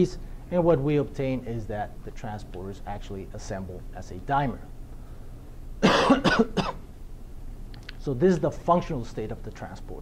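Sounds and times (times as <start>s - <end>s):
man coughing: 5.8s - 6.9s.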